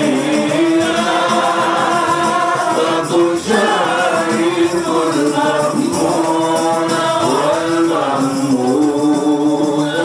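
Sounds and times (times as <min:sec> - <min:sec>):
men singing through a microphone: 0:00.0 - 0:10.0.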